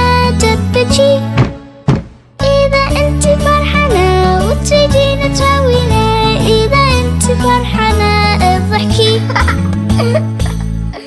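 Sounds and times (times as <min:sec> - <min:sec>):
bouncy backing music: 0:00.0 - 0:11.0
person singing: 0:02.4 - 0:09.3.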